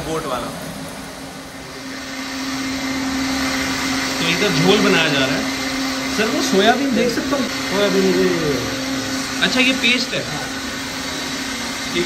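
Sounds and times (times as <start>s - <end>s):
mixer grinder motor hum: 0.0s - 12.0s.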